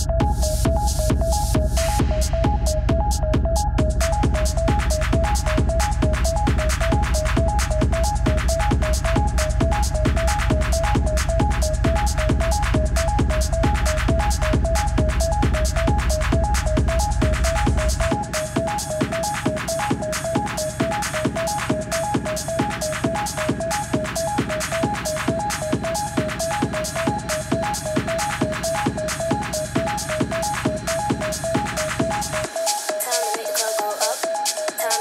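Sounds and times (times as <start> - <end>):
deep bass: 0.0 - 18.7
hard techno kick drum: 0.0 - 35.0.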